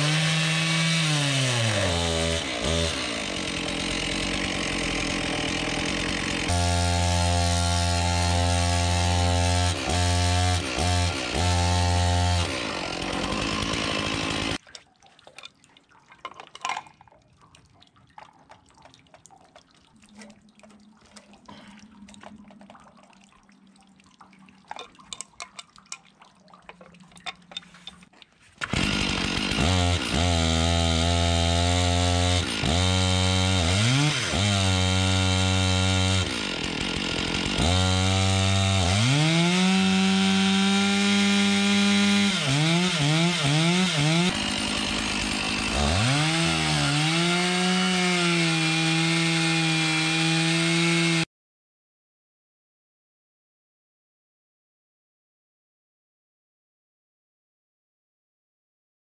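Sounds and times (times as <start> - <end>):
chainsaw engine revving: 0.0 - 14.6, 28.6 - 51.3.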